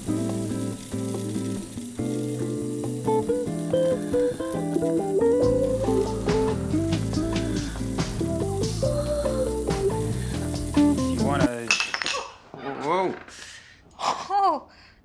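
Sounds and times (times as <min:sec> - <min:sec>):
acoustic guitar music: 0:00.0 - 0:11.7.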